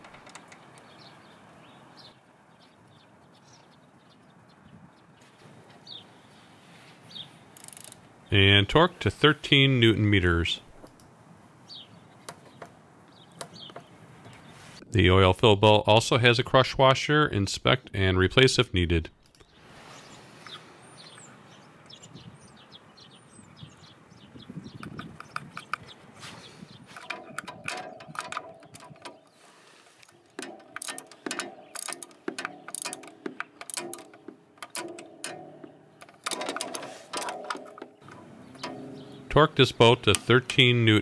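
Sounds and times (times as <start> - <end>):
socket wrench ratchet clicking: 7.6 - 8.0, 30.4 - 37.8.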